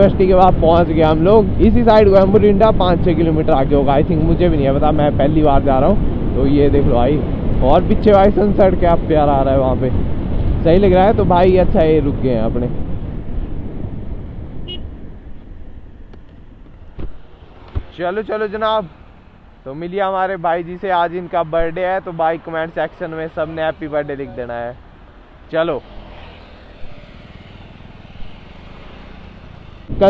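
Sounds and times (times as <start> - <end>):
motorcycle engine and wind rumble: 0.0 - 30.0.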